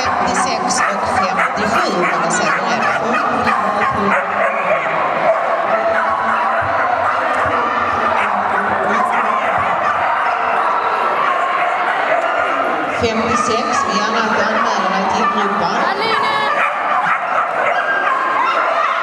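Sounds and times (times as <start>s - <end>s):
dog barking and yipping: 0.0s - 12.7s, 13.5s - 19.0s
crowd chatter in a hall: 0.0s - 19.0s.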